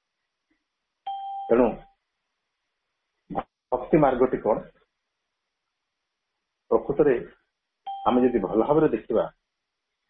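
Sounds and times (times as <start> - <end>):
two-tone electronic beep: 1.1 - 2.0, 7.9 - 8.4
man talking: 1.5 - 1.9, 3.3 - 4.8, 6.7 - 7.4, 8.0 - 9.4.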